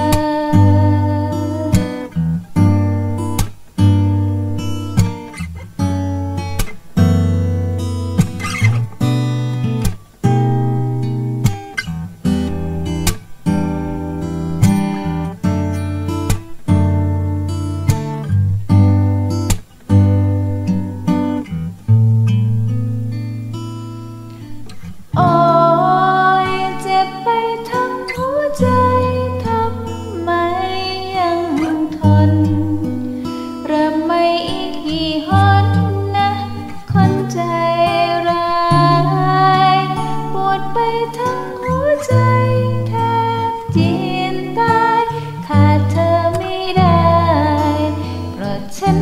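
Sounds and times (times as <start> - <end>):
person singing: 0.0 - 2.2, 25.2 - 49.0
acoustic guitar chords: 0.0 - 49.0.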